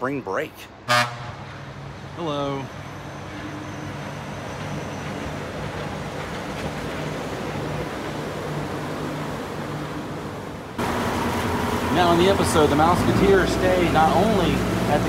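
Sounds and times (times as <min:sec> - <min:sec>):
monorail train electric hum: 0:01.4 - 0:15.0
boat engine: 0:01.8 - 0:15.0.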